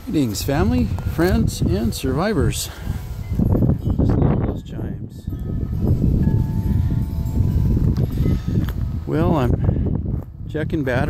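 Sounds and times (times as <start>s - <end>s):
wind buffeting microphone: 0.0s - 11.0s
faint steady ringing tone: 0.9s - 9.8s.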